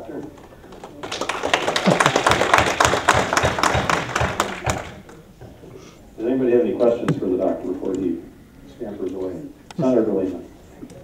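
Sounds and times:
audience applauding: 0.4s - 5.2s.

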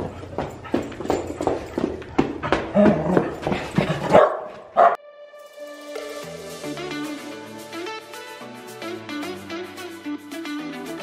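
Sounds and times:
dog barking and yipping: 3.9s - 5.0s.

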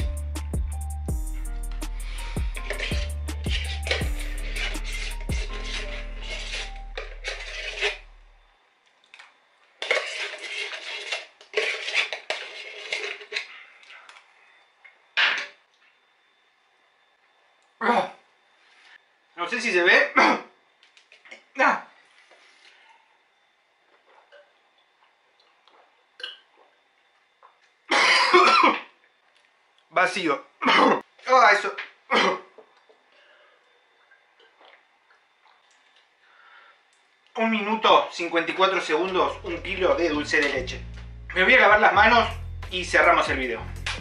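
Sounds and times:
metal spoon scraping a tin: 1.7s - 8.2s, 9.8s - 13.6s
man coughing: 27.9s - 28.9s, 30.6s - 31.0s, 32.1s - 32.5s.

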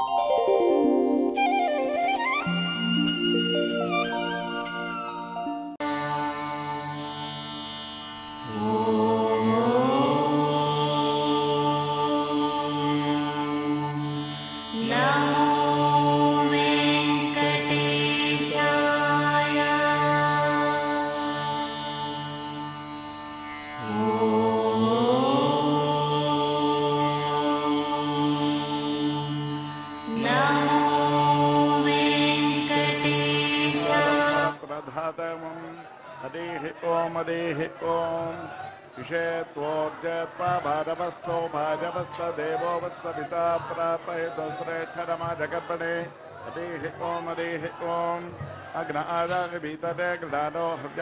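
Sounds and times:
devotional music with held notes: 0.0s - 34.7s.

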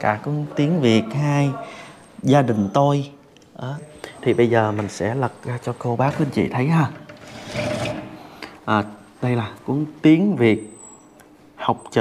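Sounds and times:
glass sliding door scraping: 6.9s - 8.3s.

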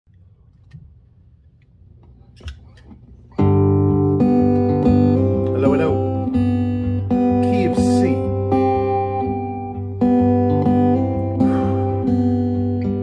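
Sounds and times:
strummed acoustic guitar: 2.6s - 13.0s.

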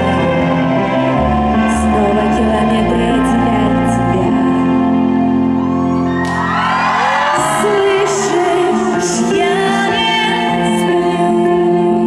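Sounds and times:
woman singing pop song: 0.0s - 5.0s, 7.0s - 12.0s.

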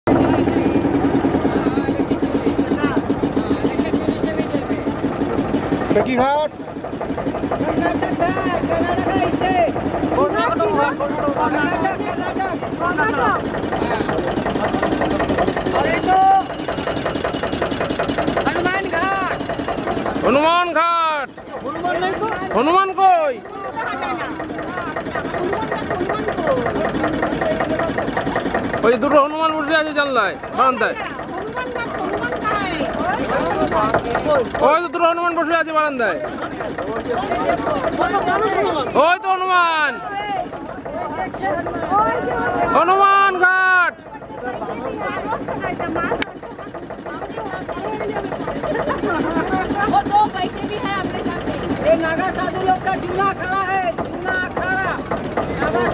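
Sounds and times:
motorboat engine chugging: 0.0s - 55.9s
people talking: 0.1s - 6.6s, 7.2s - 55.9s.

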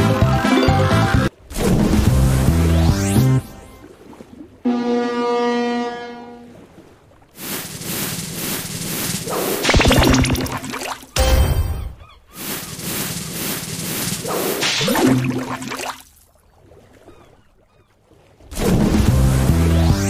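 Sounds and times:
watery noise: 1.3s - 20.0s.

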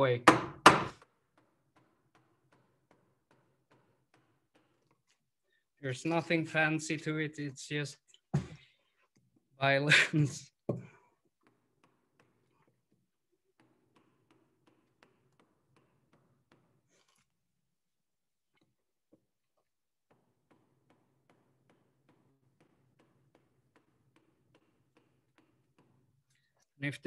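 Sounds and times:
mallet knocking on gouge handle: 0.2s - 4.6s.

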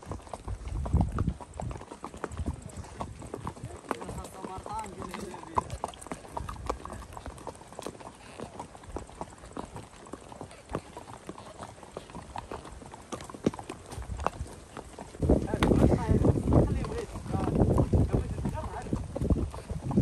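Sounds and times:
horse hooves clip-clopping: 0.0s - 20.0s.

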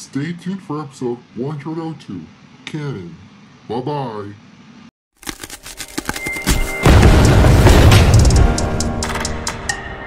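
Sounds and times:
music: 6.1s - 10.0s
deep rumbling boom: 6.8s - 8.6s.

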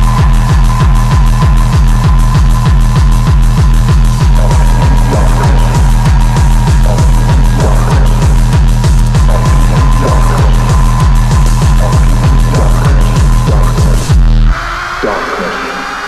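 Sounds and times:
heavy kick drums: 0.0s - 15.4s
drum and bass music: 0.0s - 16.0s.

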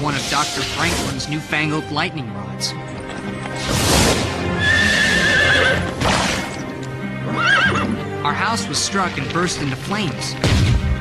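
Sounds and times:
dramatic music: 0.0s - 11.0s
horse whinnying: 4.5s - 6.6s, 7.2s - 8.0s.

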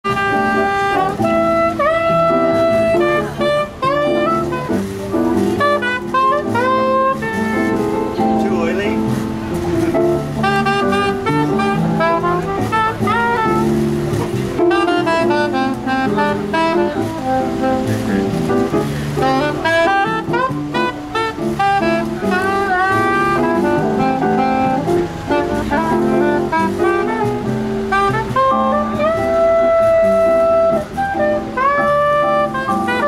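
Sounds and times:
held lower chords: 0.0s - 33.0s
soprano saxophone jazz melody: 0.0s - 33.0s.

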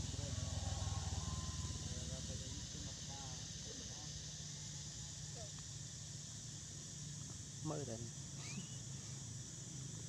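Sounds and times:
small engine running: 0.0s - 5.0s.

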